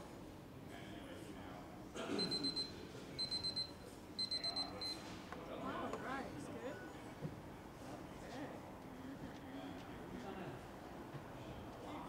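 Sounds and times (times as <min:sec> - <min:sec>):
digital timer beeping: 0:02.4 - 0:05.0.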